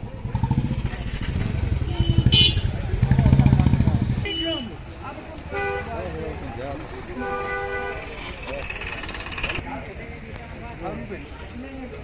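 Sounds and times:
motorcycle engine running: 0:00.0 - 0:04.2
horn toot: 0:01.7 - 0:02.8.

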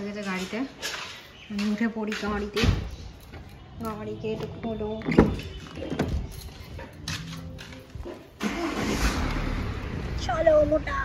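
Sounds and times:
car engine starting and running: 0:08.3 - 0:11.0.

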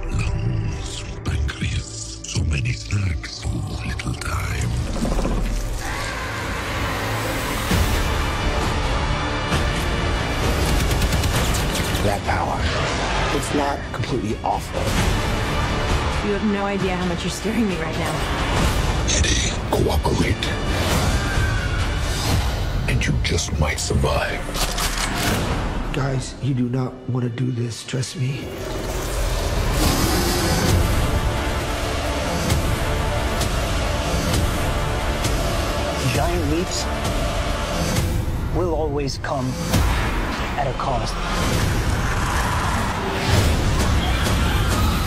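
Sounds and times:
dramatic trailer score: 0:00.0 - 0:45.0.

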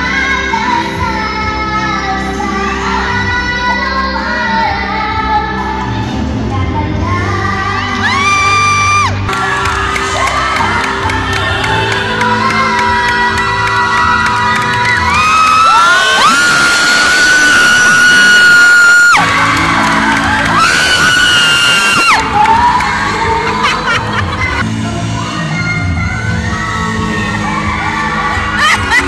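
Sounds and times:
child singing into a microphone: 0:00.0 - 0:08.6, 0:09.4 - 0:15.1
backing track music: 0:00.0 - 0:29.0
audience whooping and cheering: 0:07.9 - 0:24.6, 0:26.3 - 0:29.0.

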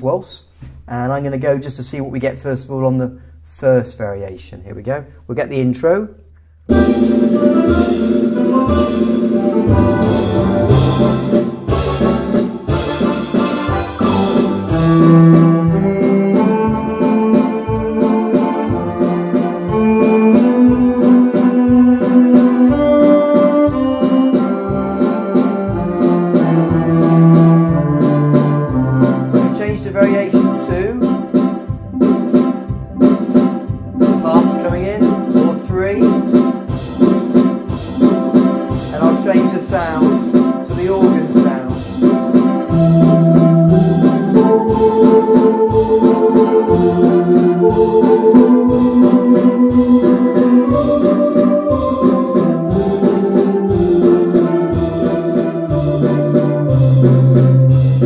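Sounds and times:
auto-accompaniment drums: 0:06.7 - 0:58.0
electronic organ playing a waltz: 0:06.7 - 0:58.0.

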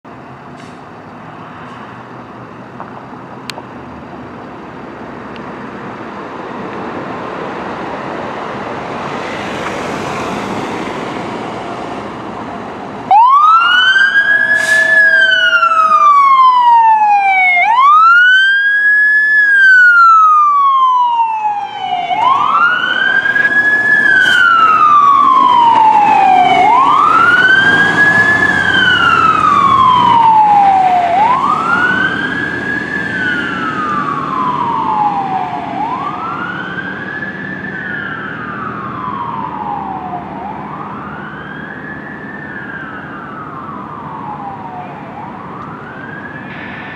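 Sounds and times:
fire truck siren wailing: 0:08.9 - 0:46.9.

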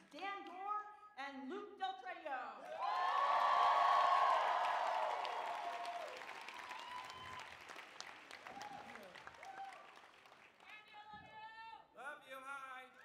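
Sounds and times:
large audience applauding: 0:02.7 - 0:11.0.

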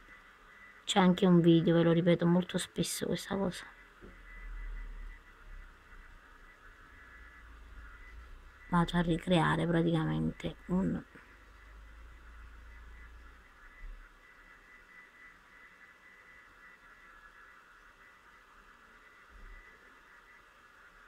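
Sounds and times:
faint room hiss: 0:00.0 - 0:21.0
low hum: 0:00.0 - 0:21.0.

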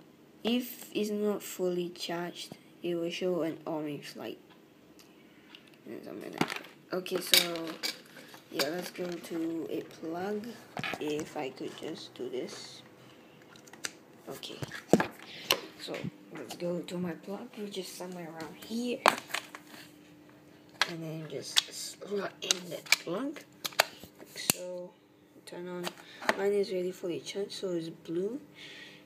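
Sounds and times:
faint steady hum: 0:00.0 - 0:29.0.

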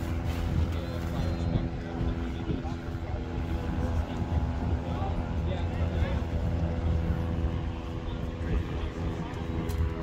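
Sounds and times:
motor humming and rumbling: 0:00.0 - 0:10.0.

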